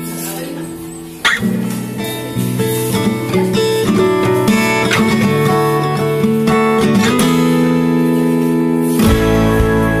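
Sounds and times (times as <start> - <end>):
strummed acoustic guitar chords: 0.8 - 10.0.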